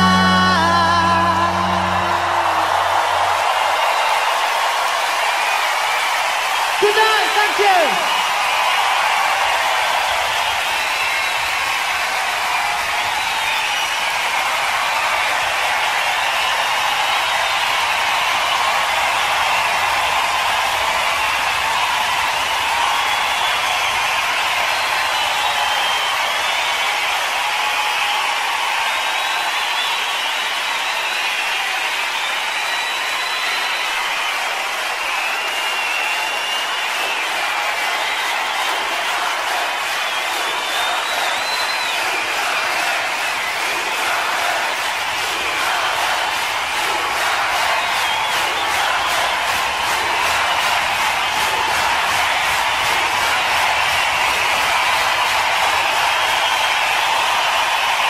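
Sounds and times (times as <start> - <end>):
audience applauding and cheering: 0.0 - 58.0.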